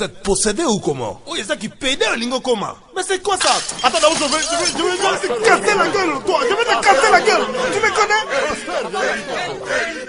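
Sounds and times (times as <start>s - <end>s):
voices shouting and talking: 3.3s - 10.0s.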